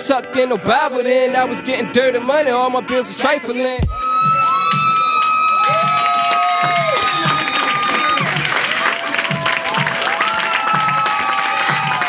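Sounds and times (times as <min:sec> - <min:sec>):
steady low beat: 0:03.8 - 0:05.1
crowd cheering and whooping: 0:03.9 - 0:12.0.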